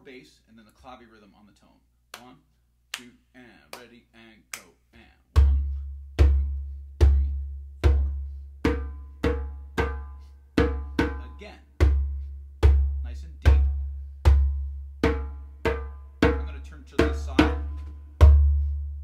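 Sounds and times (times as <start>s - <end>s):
djembe hand drumming: 5.4s - 19.0s.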